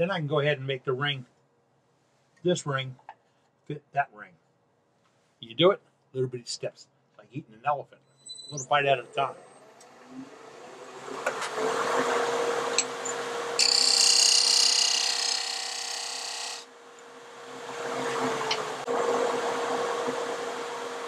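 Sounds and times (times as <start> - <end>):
turning tool cutting wood: 10.8 - 16.7
wood lathe humming: 12.0 - 21.0.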